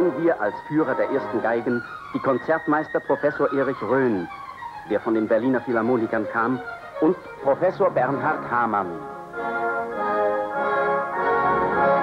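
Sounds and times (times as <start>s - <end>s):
orchestra playing sustained chords: 4.8s - 12.0s.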